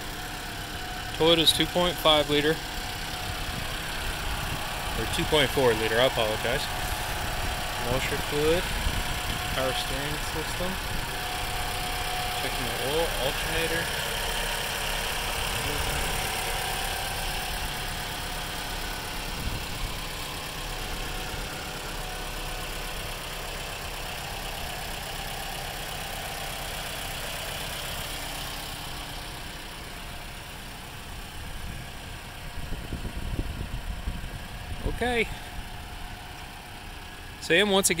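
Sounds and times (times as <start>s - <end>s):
car engine idling: 0.0s - 38.0s.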